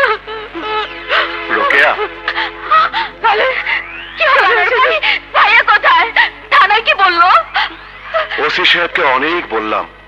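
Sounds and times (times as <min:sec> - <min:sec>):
low hum: 0:00.0 - 0:10.0
man speaking: 0:08.4 - 0:09.9.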